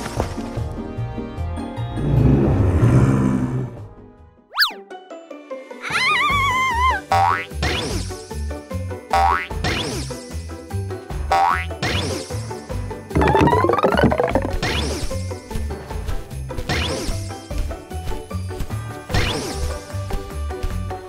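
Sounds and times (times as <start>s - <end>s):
bouncy cartoon music: 5.7s - 7.9s, 9.1s - 10.0s, 11.2s - 12.1s, 13.1s - 15.1s.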